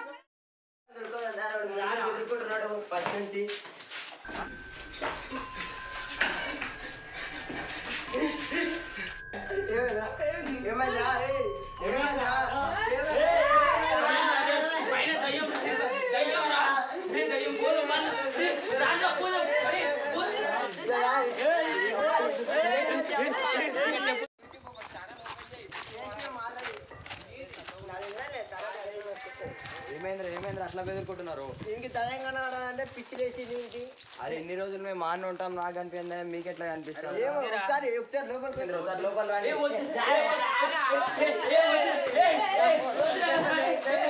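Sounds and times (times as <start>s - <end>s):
young men talking and calling out: 0.9s - 44.0s.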